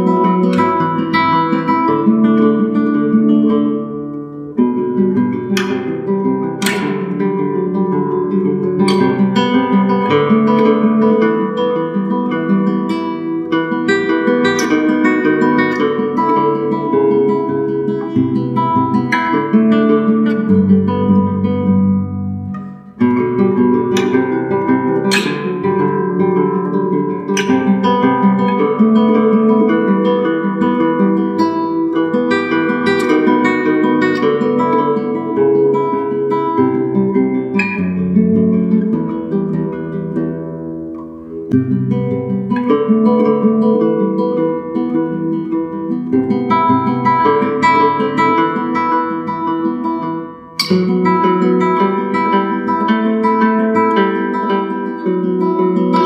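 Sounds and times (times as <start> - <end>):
fingerpicked classical guitar: 0.0 - 56.0.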